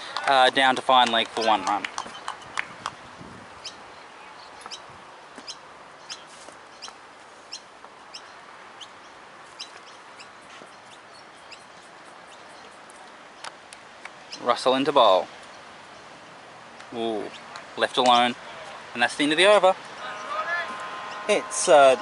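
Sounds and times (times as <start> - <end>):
birds chirping: 0.0 - 22.0
steady background hiss: 0.0 - 22.0.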